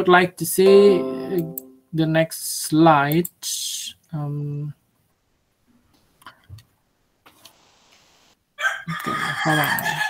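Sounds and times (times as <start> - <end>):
faint hiss: 7.2 - 8.4
rooster crowing loudly: 8.6 - 10.0.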